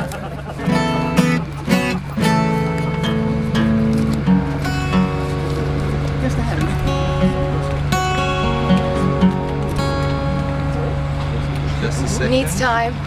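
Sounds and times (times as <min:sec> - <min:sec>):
acoustic guitar strumming: 0:00.0 - 0:13.0
steady low hum: 0:00.0 - 0:13.0.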